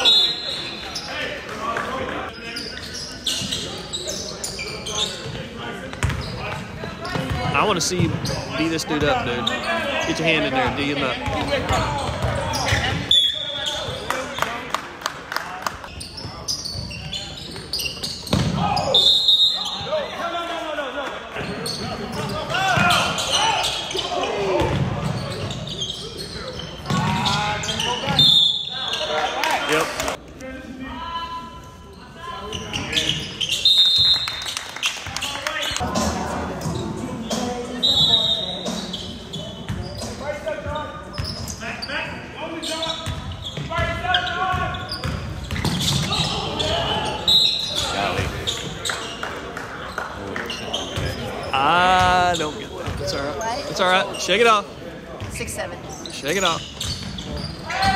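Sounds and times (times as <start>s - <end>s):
sneaker squeaks: 0.0s - 1.4s, 2.3s - 14.5s, 15.8s - 20.3s, 21.4s - 29.9s, 31.5s - 35.8s, 36.6s - 57.9s.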